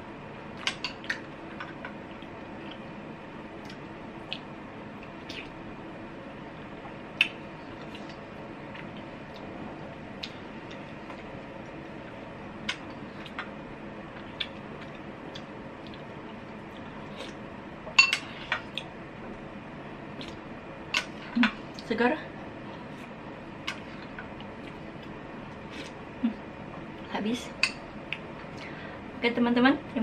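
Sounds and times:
faint room hum: 0:00.0 - 0:30.0.

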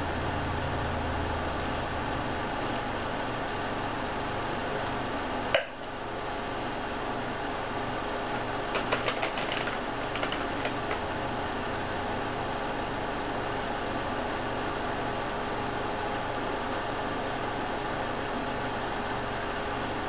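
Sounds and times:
low mechanical hum and hiss: 0:00.0 - 0:20.0.

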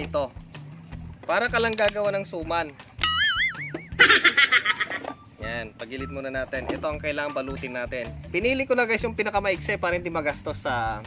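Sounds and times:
wobbling tone effect: 0:03.0 - 0:04.4.

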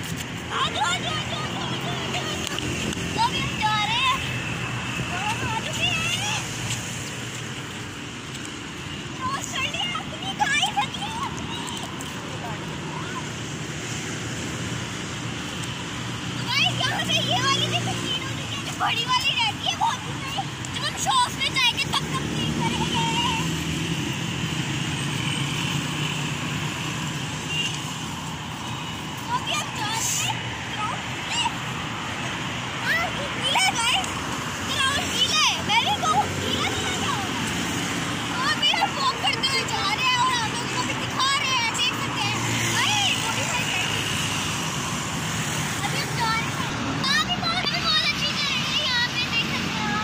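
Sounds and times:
cars and motorcycles driving past: 0:00.0 - 0:50.0
road traffic: 0:00.0 - 0:50.0.

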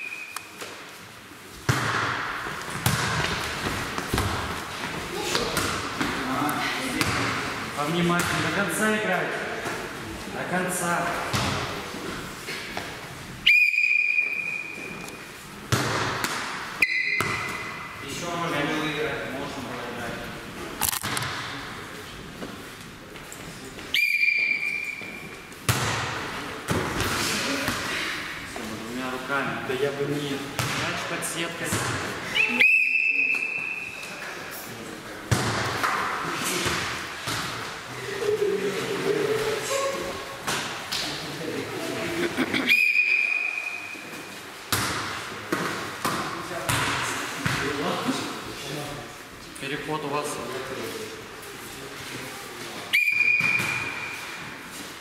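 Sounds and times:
sports whistle blasts: 0:00.0 - 0:00.5, 0:13.4 - 0:14.8, 0:16.8 - 0:17.5, 0:23.9 - 0:25.2, 0:32.3 - 0:34.0, 0:42.7 - 0:44.0, 0:52.9 - 0:54.1
ball being hit and bouncing: 0:01.6 - 0:06.2, 0:06.9 - 0:08.6, 0:11.2 - 0:11.8, 0:15.7 - 0:17.8, 0:24.5 - 0:27.9, 0:30.6 - 0:31.0, 0:35.3 - 0:37.7, 0:40.4 - 0:41.1, 0:44.7 - 0:47.8, 0:53.1 - 0:54.2
players' voices: 0:03.1 - 0:12.8, 0:25.8 - 0:44.2.

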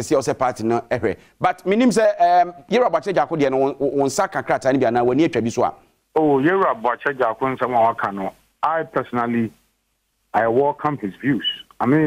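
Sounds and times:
man speaking over telephone: 0:06.2 - 0:09.6, 0:10.3 - 0:12.0.

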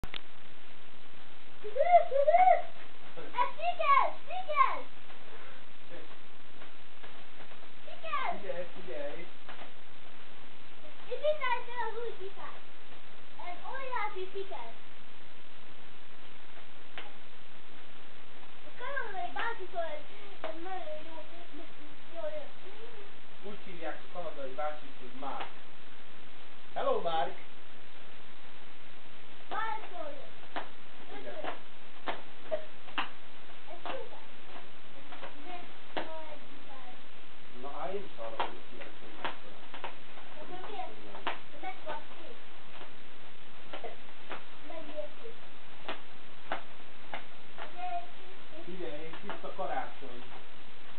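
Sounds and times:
steady hiss: 0:00.0 - 0:50.9
bubble wrap popping: 0:29.4 - 0:36.3, 0:38.2 - 0:48.0.

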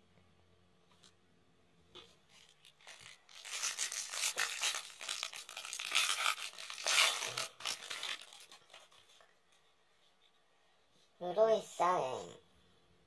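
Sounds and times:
foil wrapper crinkling and tearing: 0:02.4 - 0:09.2.

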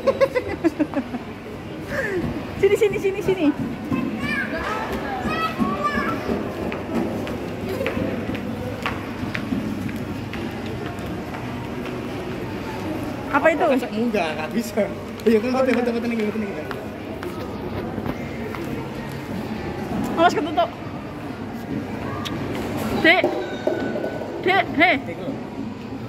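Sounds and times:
murmur of voices: 0:00.0 - 0:26.0.

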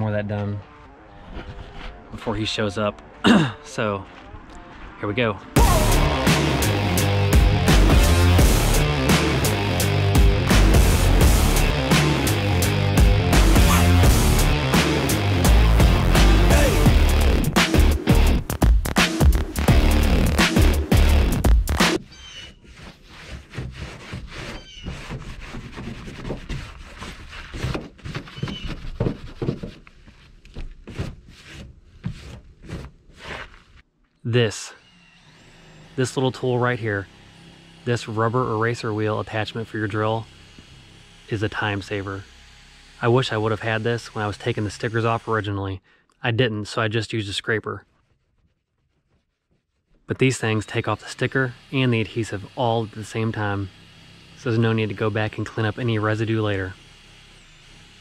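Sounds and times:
short rubbery squeaks: 0:21.9 - 0:33.9
scrubbing on sheet metal: 0:22.0 - 0:33.8.

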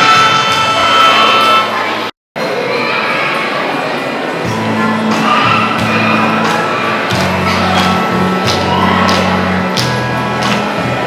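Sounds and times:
keyboard music: 0:04.4 - 0:11.0.

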